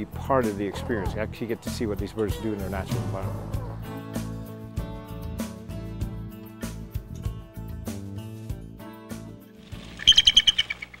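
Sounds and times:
bird chirping rapidly: 9.7s - 11.0s.

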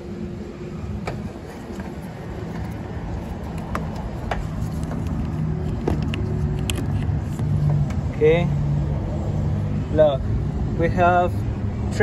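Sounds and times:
vehicle engine drone: 0.0s - 12.0s.

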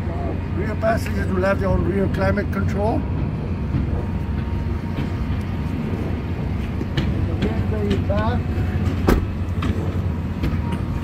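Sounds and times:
low rumble: 0.0s - 11.0s
car door shutting: 8.9s - 9.8s.

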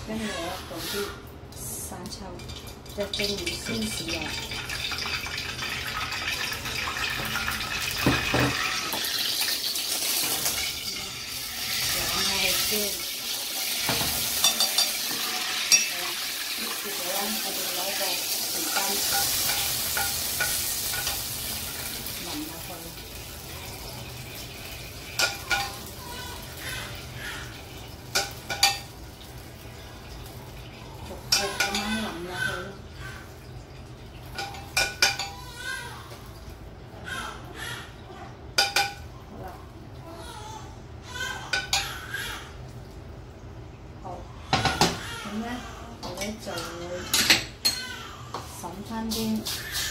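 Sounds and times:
sauce sizzling in hot oil: 3.2s - 32.2s
metal spoon clinking on pan: 13.9s - 15.9s, 18.3s - 21.3s.

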